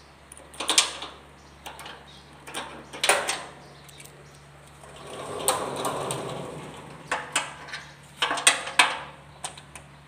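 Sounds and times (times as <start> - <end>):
sliding door rolling on track: 4.8 - 8.7.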